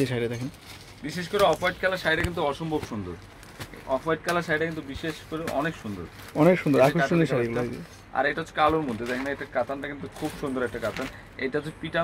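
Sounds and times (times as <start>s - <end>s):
man talking: 0.0s - 3.2s, 3.8s - 12.0s.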